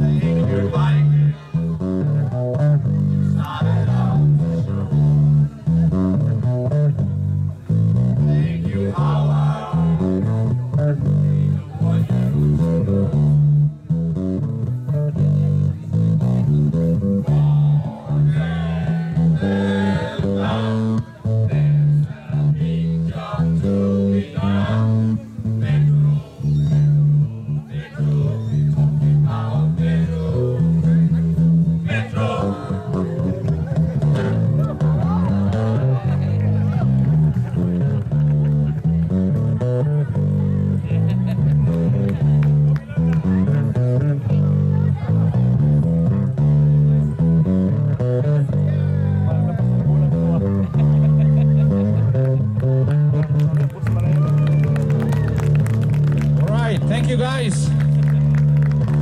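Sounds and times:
backing music over loudspeakers: 0.0 - 59.0
group of people singing: 3.3 - 4.4, 8.3 - 10.0, 17.3 - 26.6, 27.7 - 30.7, 31.8 - 33.2.

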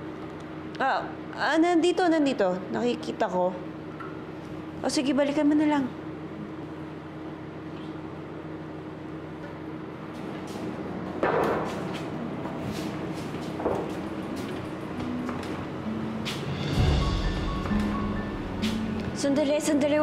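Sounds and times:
drama score sustained tones: 14.7 - 20.0.

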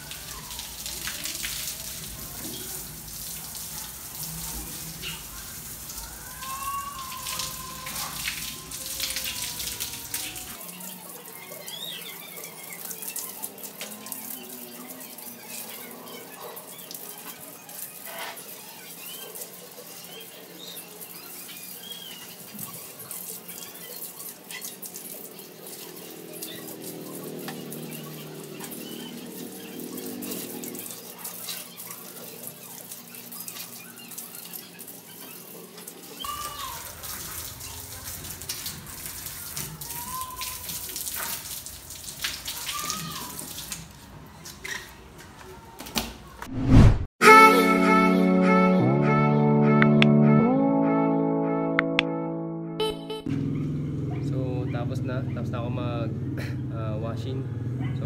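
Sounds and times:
hose water spraying on bike: 0.0 - 45.8.

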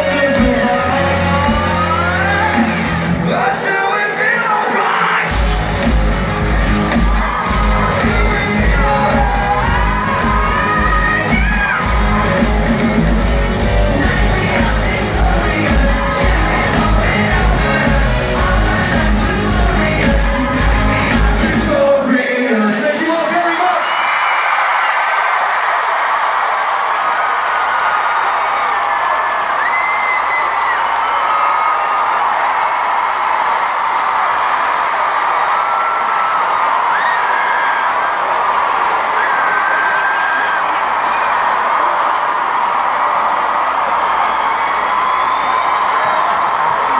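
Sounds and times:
concert crowd cheering: 0.0 - 46.9.

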